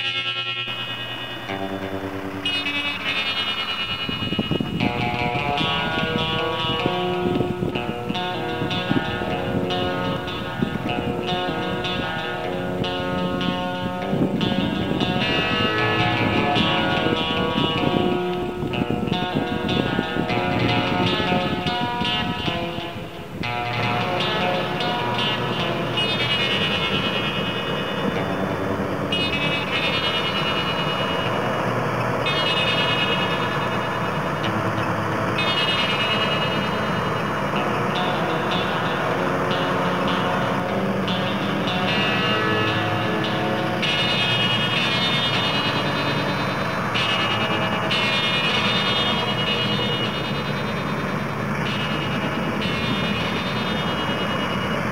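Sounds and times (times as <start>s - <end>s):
combine harvester running: 27.7s - 43.8s, 49.0s - 54.9s.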